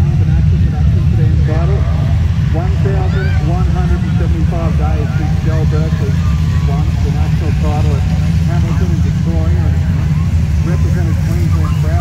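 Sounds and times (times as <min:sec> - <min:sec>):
indistinct voices talking: 0:00.0 - 0:12.0
race car engines rumbling: 0:00.0 - 0:12.0.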